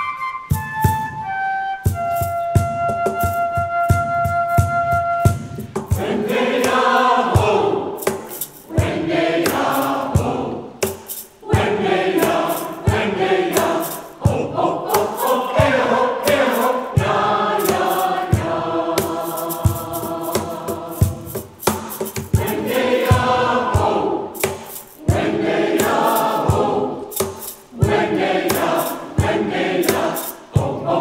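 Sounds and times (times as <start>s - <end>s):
choir singing: 5.8s - 31.0s.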